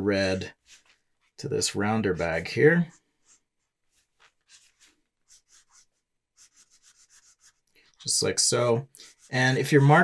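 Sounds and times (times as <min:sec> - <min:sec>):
marker scratching on paper: 0:00.6 - 0:01.4, 0:02.1 - 0:08.2, 0:09.0 - 0:10.0.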